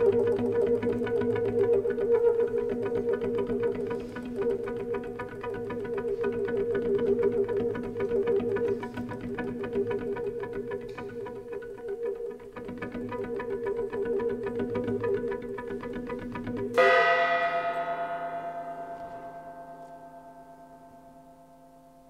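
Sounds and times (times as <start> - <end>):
repeated plucked notes: 0.0 - 21.4
bell-like tone ringing: 16.8 - 22.0.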